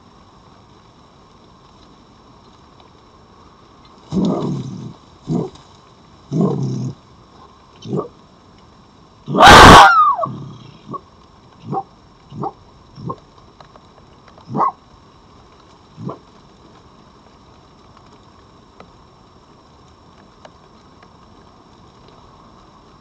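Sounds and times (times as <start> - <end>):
foxes barking: 9.3 - 11.0, 11.6 - 13.2, 14.5 - 14.8, 16.0 - 16.2.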